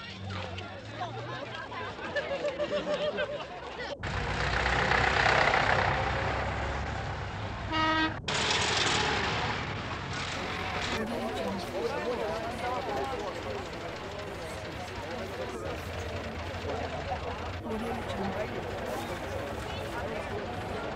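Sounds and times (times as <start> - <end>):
people chattering: 0.0 - 4.0, 10.4 - 20.9
tractor engines passing: 0.0 - 20.9.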